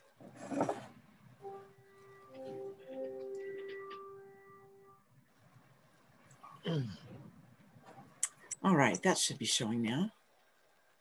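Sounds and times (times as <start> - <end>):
held musical note: 1.4 - 5.0.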